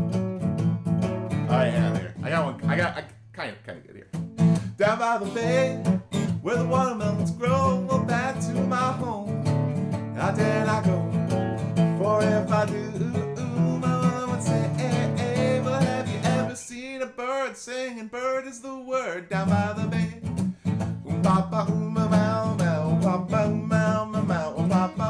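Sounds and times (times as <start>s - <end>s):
acoustic guitar strummed: 0.0s - 3.0s, 4.1s - 17.5s, 19.3s - 25.0s
man singing: 1.4s - 2.8s, 4.7s - 9.4s, 10.1s - 20.4s, 21.0s - 25.0s.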